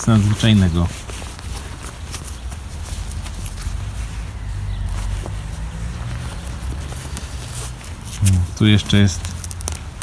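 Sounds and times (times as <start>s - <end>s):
fabric rustling and scraping: 0.0s - 9.8s.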